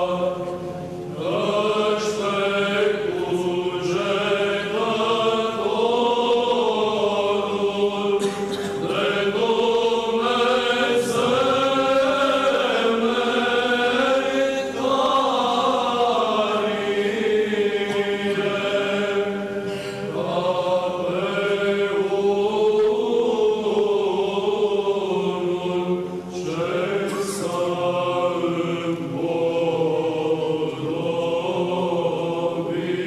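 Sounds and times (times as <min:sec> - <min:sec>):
unaccompanied voices chanting a hymn: 0:00.0 - 0:33.0.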